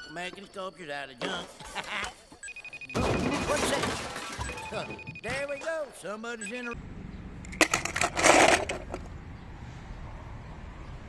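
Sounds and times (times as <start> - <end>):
low outdoor background rumble: 6.8 - 11.0.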